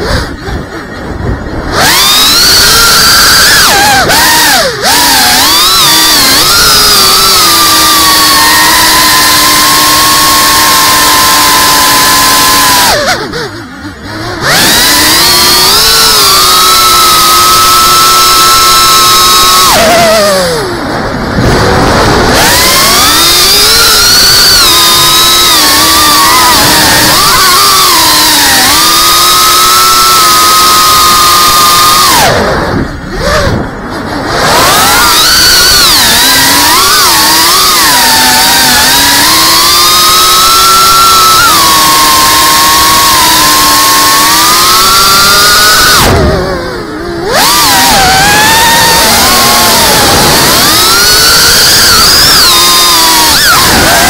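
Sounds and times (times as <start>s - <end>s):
quadcopter motors whining: 0.0s - 54.0s.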